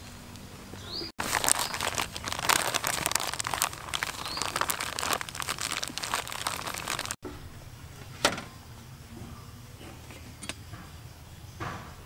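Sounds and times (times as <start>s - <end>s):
plastic bag crinkling: 1.2s - 7.2s.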